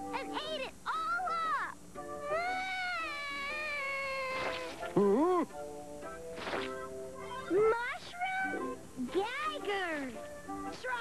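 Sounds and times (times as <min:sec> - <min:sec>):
soft background music: 0:00.0 - 0:11.0
cartoon character wailing: 0:02.2 - 0:05.5.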